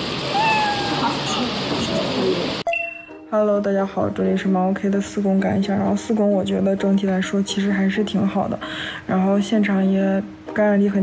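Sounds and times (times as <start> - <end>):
high drawn-out vocal call: 0.2 - 1.7.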